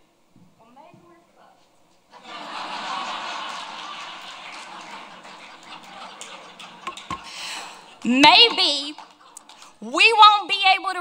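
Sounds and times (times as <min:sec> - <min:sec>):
audience applauding: 0:02.2 - 0:09.8.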